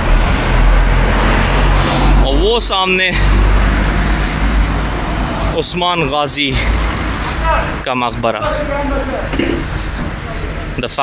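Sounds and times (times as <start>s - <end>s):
low engine hum: 0.0s - 7.9s
car engines running: 0.0s - 11.0s
road noise: 0.0s - 11.0s.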